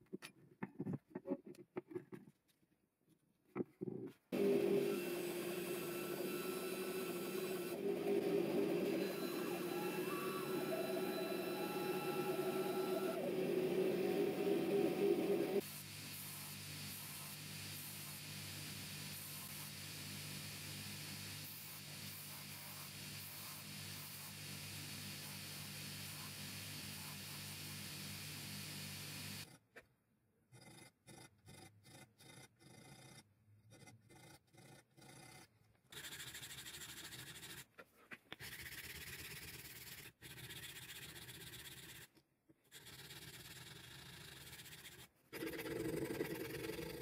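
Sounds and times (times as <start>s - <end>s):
bandsaw cutting: 4.4s - 15.6s
belt grinder humming: 4.4s - 15.6s.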